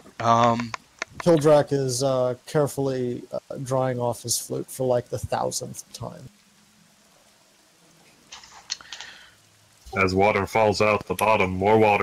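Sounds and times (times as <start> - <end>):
faint hiss: 0.0 - 12.0
small clicks: 8.3 - 9.2.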